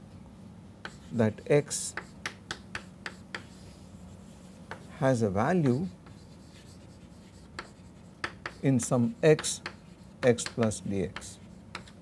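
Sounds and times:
chalk tapping on blackboard: 0.8s - 3.8s, 4.4s - 5.0s, 5.6s - 12.0s
chalk scratching on blackboard: 0.8s - 12.0s.

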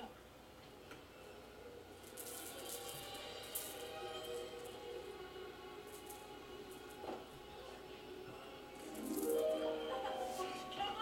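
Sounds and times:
television music: 0.0s - 11.0s
rattle-like shaking sound: 2.0s - 4.9s, 5.8s - 7.0s, 8.8s - 9.6s.

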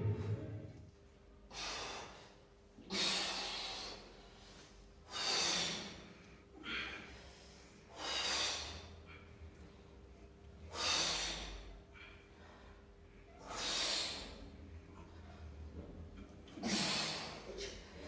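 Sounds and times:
man exhaling forcefully: 16.6s - 17.4s.

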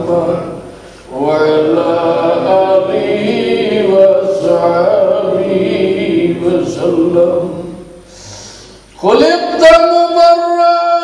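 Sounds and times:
man chanting a devotional song: 9.0s - 11.0s.

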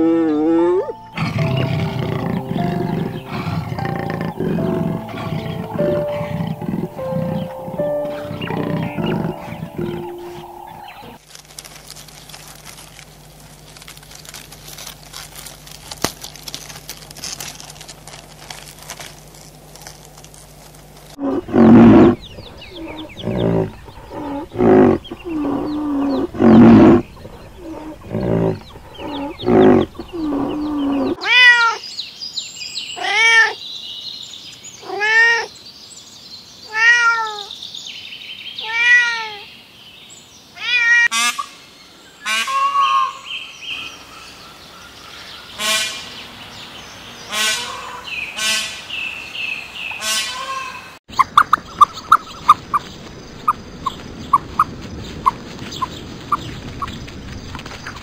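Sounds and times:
higher animal calls: 0.0s - 11.2s, 21.1s - 31.8s
loud low-pitched animal calls: 0.0s - 11.2s, 21.2s - 31.5s
cat meowing: 31.2s - 31.8s, 33.0s - 33.6s, 34.8s - 35.5s, 36.7s - 37.5s, 38.6s - 39.4s.

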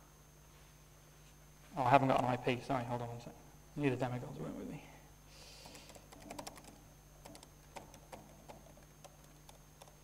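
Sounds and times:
typing on laptop keyboard: 5.6s - 10.0s.

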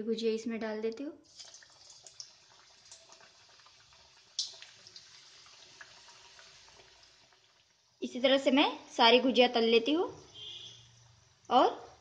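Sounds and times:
hot oil sizzling and crackling: 1.3s - 8.1s.

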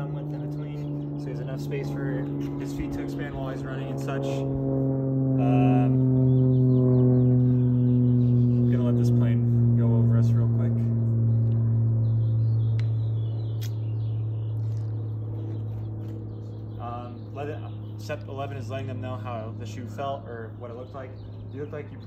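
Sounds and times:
low humming drone: 0.0s - 22.0s.

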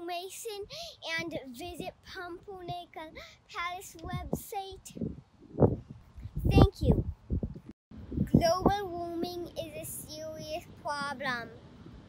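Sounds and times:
child singing unaccompanied: 0.0s - 5.1s, 8.3s - 11.6s.

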